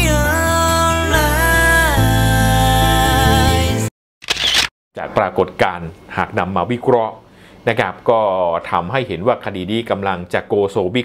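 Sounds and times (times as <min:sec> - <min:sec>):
man speaking: 0:05.0 - 0:11.0.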